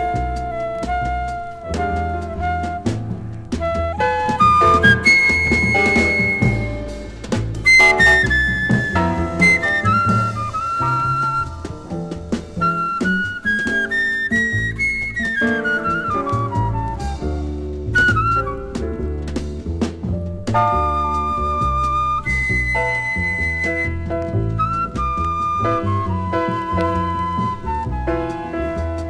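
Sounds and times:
drums: 0:00.0 - 0:29.0
walking bass line: 0:00.0 - 0:29.0
wind instrument jazz melody: 0:00.0 - 0:29.0.

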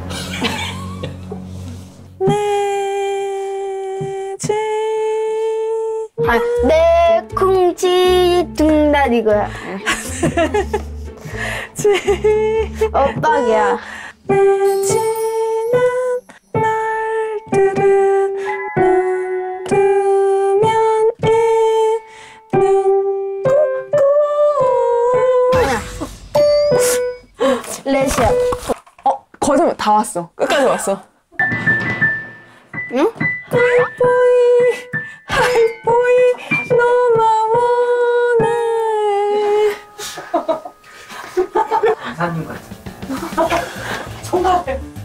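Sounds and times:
person humming held notes: 0:02.2 - 0:07.4, 0:14.3 - 0:26.0.

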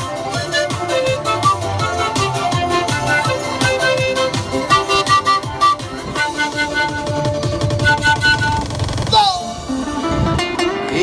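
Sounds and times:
panpipe melody: 0:00.0 - 0:10.8
backing music with steady beat: 0:00.0 - 0:11.0.

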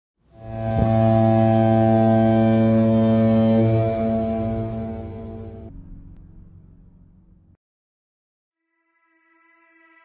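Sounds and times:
deep brass-like drone: 0:00.3 - 0:07.4
short music hit: 0:00.4 - 0:07.1.

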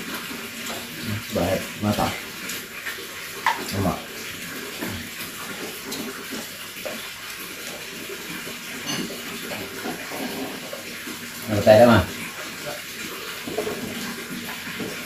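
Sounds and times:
low voices: 0:01.0 - 0:02.2
dishes clinking: 0:08.8 - 0:10.7.

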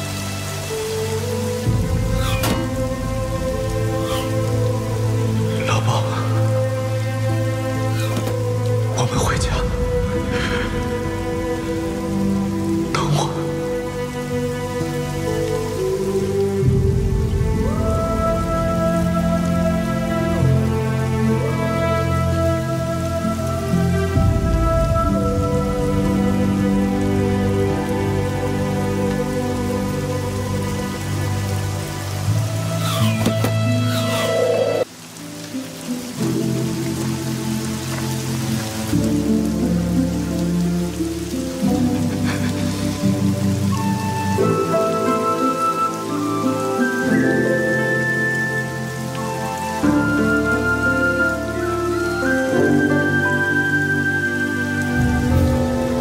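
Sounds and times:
slow music score: 0:00.0 - 0:56.0
steady rain: 0:00.0 - 0:56.0.

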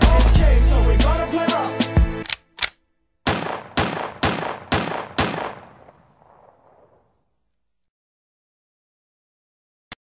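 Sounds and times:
gunshots with ringing tail: 0:03.2 - 0:07.1.

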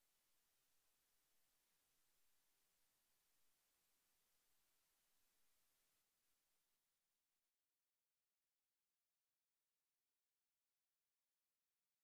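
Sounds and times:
faint recording hiss: 0:00.0 - 0:06.8.

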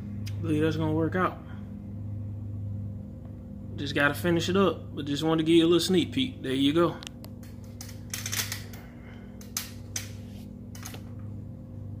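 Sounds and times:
motor electric hum: 0:00.0 - 0:12.0.

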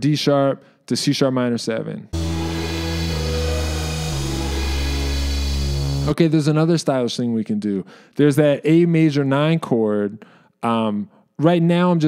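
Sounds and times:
sampled sustained chords: 0:02.2 - 0:06.2.

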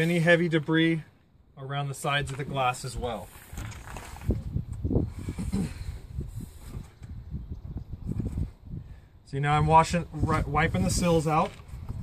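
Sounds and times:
wind rumble on microphone: 0:02.7 - 0:12.0.

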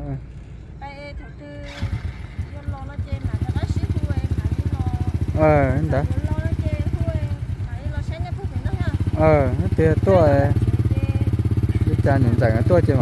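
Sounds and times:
motorcycle engine idling: 0:01.6 - 0:13.0.

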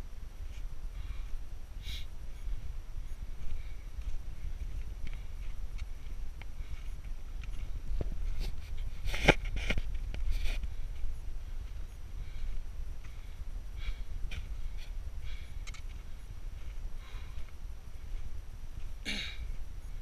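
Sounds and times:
footsteps on rocky trail: 0:02.2 - 0:20.0.

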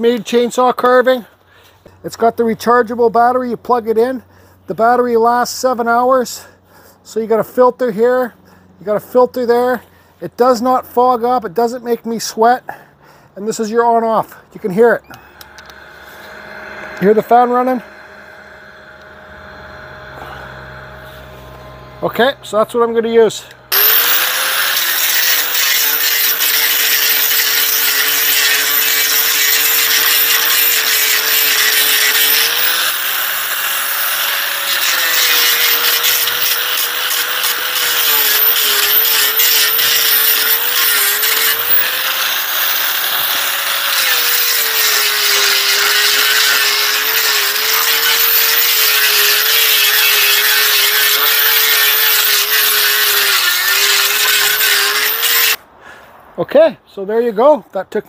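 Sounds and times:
angle grinder motor whine: 0:14.4 - 0:55.6
sanding disc grinding wood: 0:15.7 - 0:55.6.

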